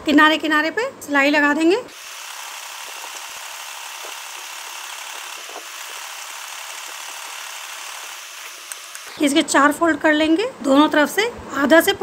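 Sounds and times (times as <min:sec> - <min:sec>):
sewing machine running: 0:01.9 - 0:09.1.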